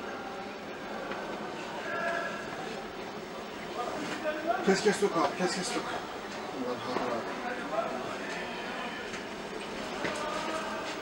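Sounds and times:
faint indistinct voices: 0:00.0 - 0:11.0
steady background noise: 0:00.0 - 0:11.0.

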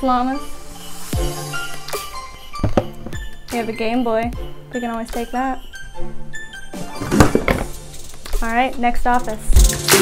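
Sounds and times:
background music: 0:00.0 - 0:10.0
object thunking into cardboard box: 0:02.6 - 0:03.2, 0:07.0 - 0:07.7.

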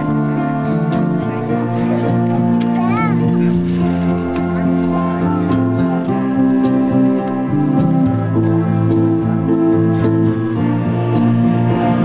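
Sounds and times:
concert band playing chords: 0:00.0 - 0:12.0.

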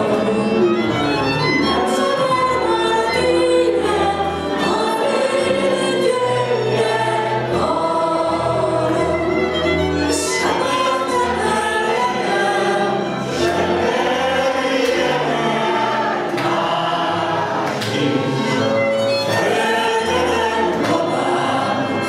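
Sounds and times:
violin: 0:00.0 - 0:22.0
woman singing into microphone: 0:01.9 - 0:09.1.

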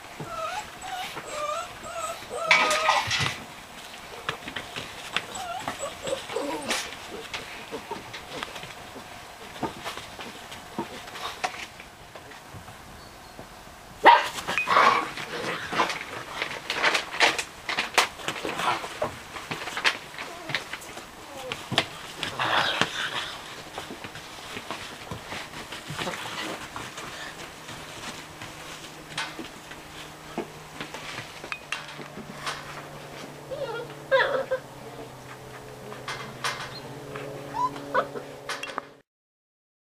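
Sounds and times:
puppies barking: 0:00.2 - 0:08.8, 0:14.0 - 0:16.5, 0:21.3 - 0:38.6.

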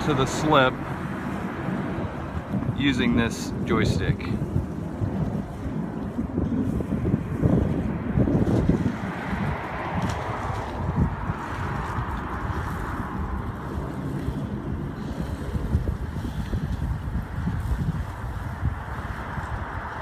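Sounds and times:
diesel boat engines running: 0:00.0 - 0:20.0
prop-wash water hissing: 0:00.0 - 0:20.0
wind buffeting microphone: 0:00.0 - 0:20.0.

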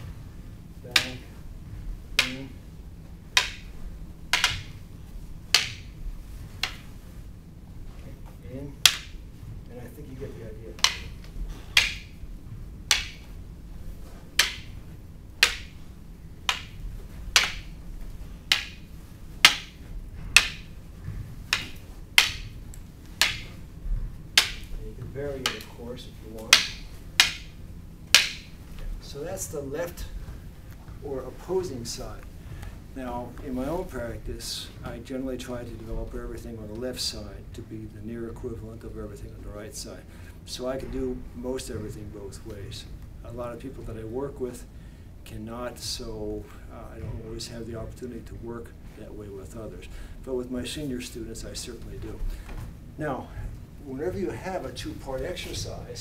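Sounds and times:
wooden canes clacking: 0:00.9 - 0:07.1, 0:07.8 - 0:35.0.

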